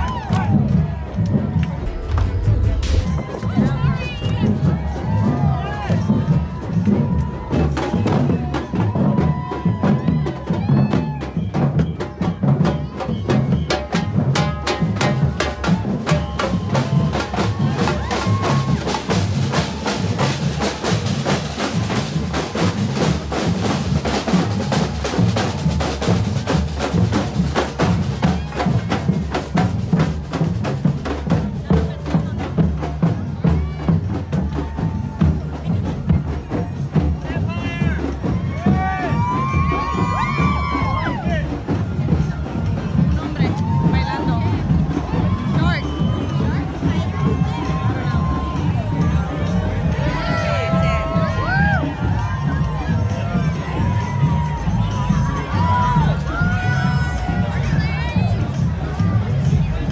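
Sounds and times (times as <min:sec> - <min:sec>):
bass drums struck with mallets: 0:00.4 - 0:06.6.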